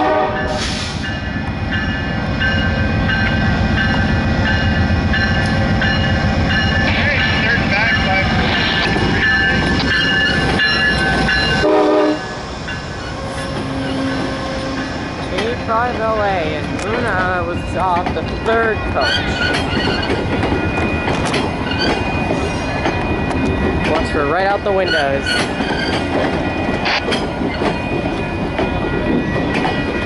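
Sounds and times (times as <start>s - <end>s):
locomotive rumbling past: 0.0s - 30.0s
passenger coaches rolling past: 0.0s - 30.0s.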